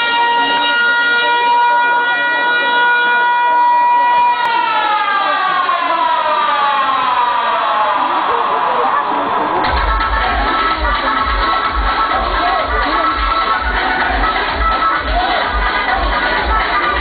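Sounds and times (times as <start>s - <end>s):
siren winding down: 0.0s - 17.0s.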